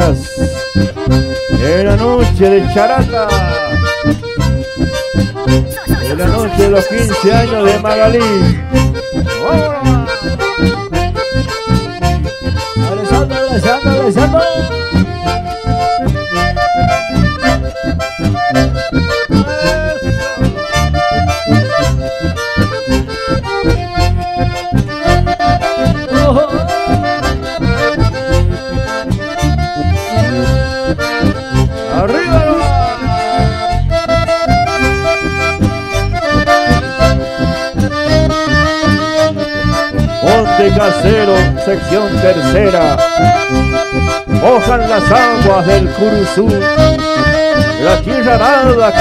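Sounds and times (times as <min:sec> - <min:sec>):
accordion melody: 0:00.0 - 0:49.0
live band playing: 0:00.0 - 0:49.0
steady low bass beat: 0:00.0 - 0:49.0.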